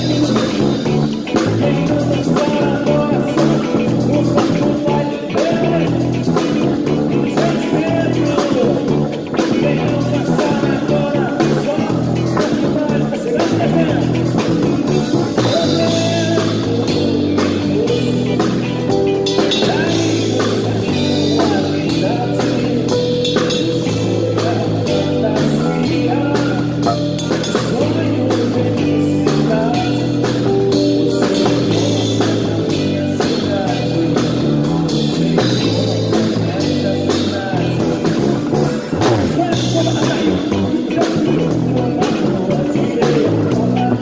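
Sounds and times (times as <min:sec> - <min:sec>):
drums hitting steadily: 0:00.0 - 0:44.0
electric bass groove: 0:00.0 - 0:44.0
live band playing: 0:00.0 - 0:44.0.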